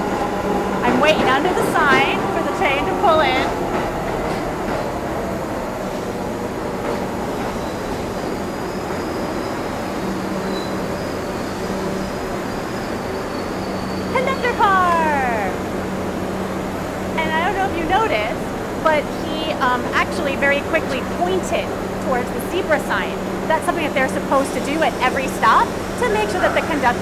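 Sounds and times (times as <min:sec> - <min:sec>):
subway train rolling in: 0:00.0 - 0:27.0
high brake squeal: 0:07.5 - 0:14.4.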